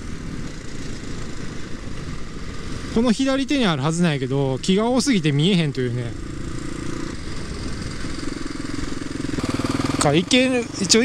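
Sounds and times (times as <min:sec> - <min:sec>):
wind rushing over microphone: 0:00.0 - 0:11.0
motorcycle engine running: 0:04.5 - 0:11.0.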